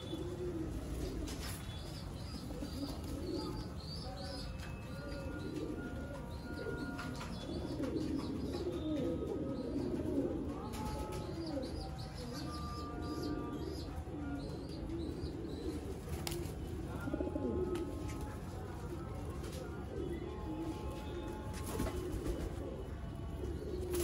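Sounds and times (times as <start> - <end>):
pigeons cooing: 0.0 - 24.0.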